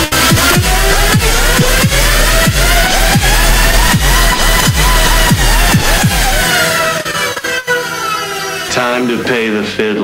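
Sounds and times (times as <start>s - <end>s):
tone gliding down in pitch: 0.0s - 8.7s
electronic beat with heavy bass: 0.0s - 8.8s
turntable scratching: 0.0s - 8.8s.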